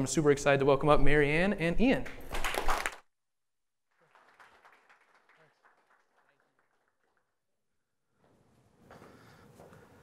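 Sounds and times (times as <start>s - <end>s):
audience applauding: 2.4s - 3.0s, 4.0s - 7.4s.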